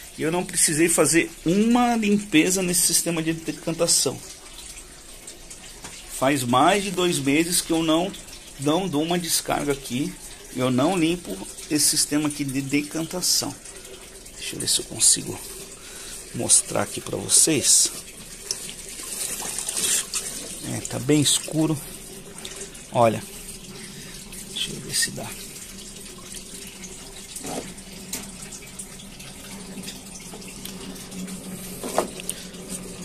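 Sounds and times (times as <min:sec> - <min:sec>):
water running into a tank: 0:00.0 - 0:33.0.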